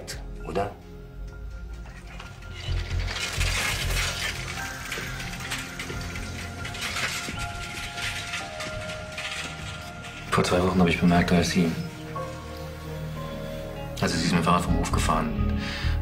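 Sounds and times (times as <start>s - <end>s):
sustained soundtrack music: 0.0s - 16.0s
bicycle freewheel ticking: 1.7s - 10.4s.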